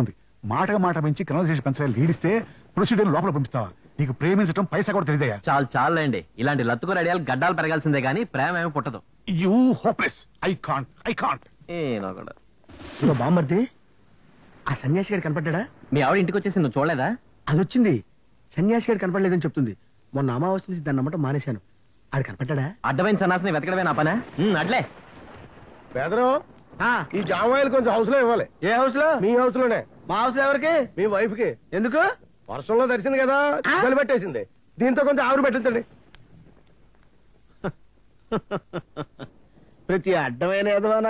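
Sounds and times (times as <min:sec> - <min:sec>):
men speaking: 0:00.0 - 0:13.8, 0:14.6 - 0:25.0, 0:25.9 - 0:36.0, 0:37.6 - 0:41.0
crickets chirring: 0:00.0 - 0:41.0.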